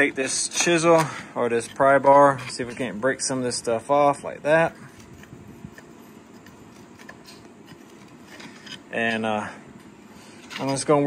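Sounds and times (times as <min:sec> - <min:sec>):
pry bar scraping metal: 0:00.0 - 0:03.4, 0:04.7 - 0:09.3, 0:10.3 - 0:11.0.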